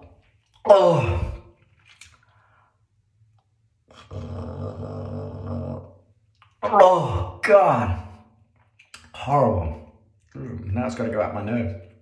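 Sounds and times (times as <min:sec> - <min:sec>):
man groaning: 0:00.7 - 0:01.4, 0:04.1 - 0:05.8.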